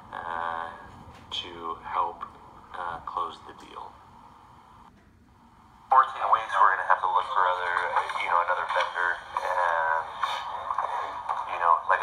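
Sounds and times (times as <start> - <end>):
soft noise band: 0.0 - 12.0.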